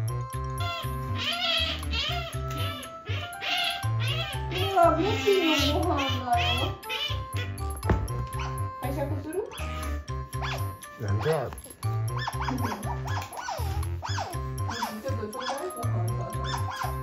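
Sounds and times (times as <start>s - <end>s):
background music with steady beat: 0.0s - 17.0s
otter chirping squeaks: 0.5s - 17.0s.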